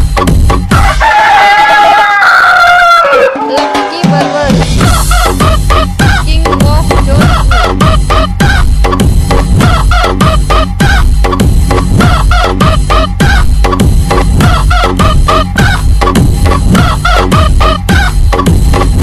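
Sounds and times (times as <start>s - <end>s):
heavy bass beat: 0.0s - 1.0s, 3.6s - 19.0s
rooster crows in dance track: 0.7s - 3.9s.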